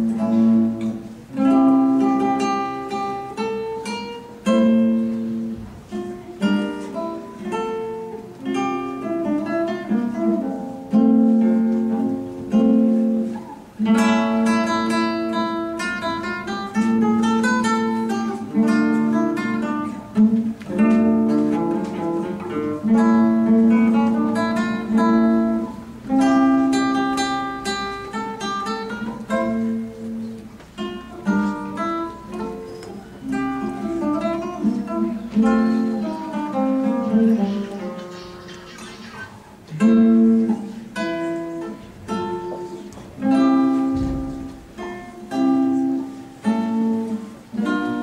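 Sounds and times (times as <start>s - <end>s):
classical guitar fingerstyle: 0.0s - 48.0s.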